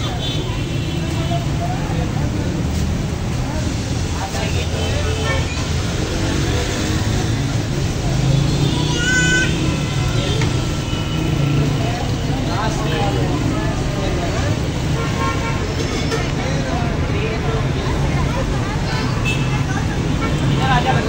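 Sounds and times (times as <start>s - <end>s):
people talking: 0.0s - 21.0s.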